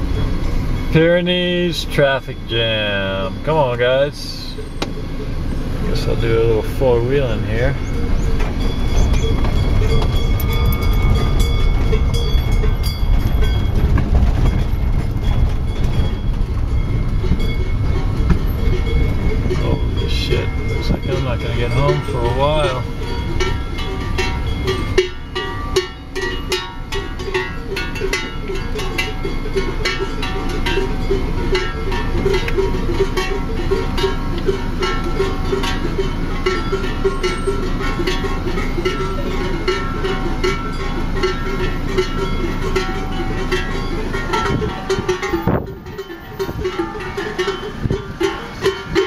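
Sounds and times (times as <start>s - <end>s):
car engine rumbling: 0.0s - 49.0s
cowbells clanking: 0.0s - 49.0s.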